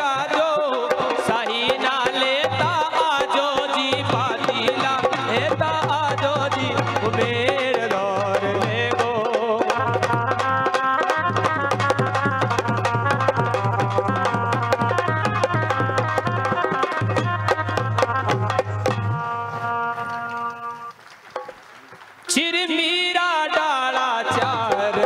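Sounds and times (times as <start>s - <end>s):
fast hand-drum strokes: 0.0s - 21.6s.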